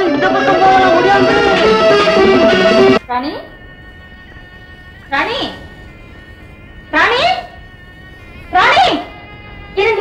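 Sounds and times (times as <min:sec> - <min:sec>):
drawn-out cry: 0:00.0 - 0:03.0
soft background music: 0:03.0 - 0:10.0.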